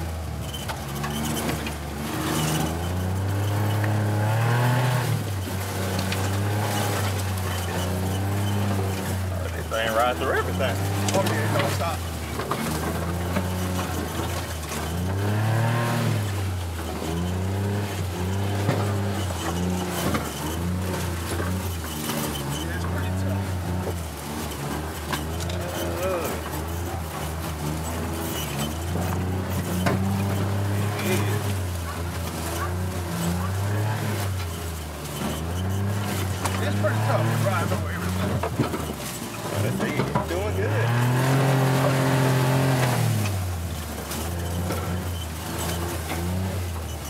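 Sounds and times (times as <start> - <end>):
utility vehicle engine running: 0.0 - 47.0
vehicle body rattling over bumps: 0.0 - 47.0.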